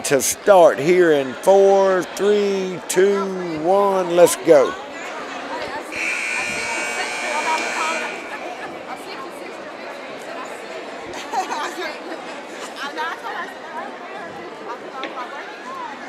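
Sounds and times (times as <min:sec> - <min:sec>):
crowd chatter echoing: 0:00.0 - 0:16.0
scoreboard buzzer: 0:05.9 - 0:08.6.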